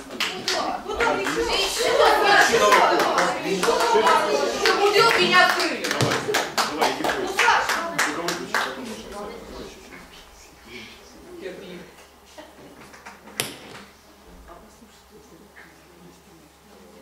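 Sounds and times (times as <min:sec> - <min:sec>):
audience clapping: 0:00.0 - 0:09.1
voices talking: 0:00.0 - 0:13.4.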